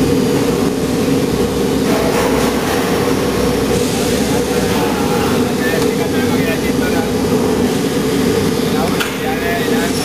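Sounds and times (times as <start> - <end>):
die-casting machine droning: 0.0 - 10.0.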